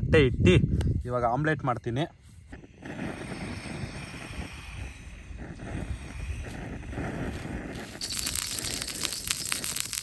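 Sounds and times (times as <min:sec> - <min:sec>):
camping stove gas hissing: 0:02.4 - 0:10.0
burner catching alight: 0:02.5 - 0:10.0.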